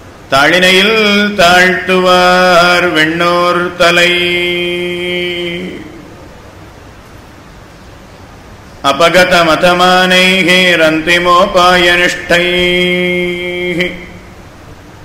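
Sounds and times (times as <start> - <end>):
man chanting verses: 0.3 - 6.1, 8.8 - 14.4.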